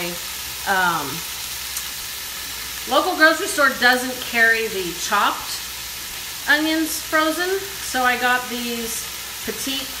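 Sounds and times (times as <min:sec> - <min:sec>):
food sizzling in pot: 0:00.0 - 0:10.0.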